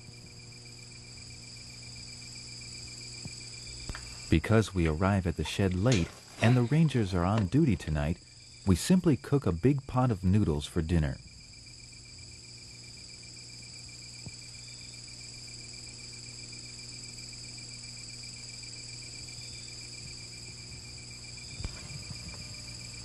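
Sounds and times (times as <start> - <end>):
insects trilling: 0.0 - 23.0
low steady hum: 0.0 - 23.0
pulsed insect chirp: 0.0 - 23.0.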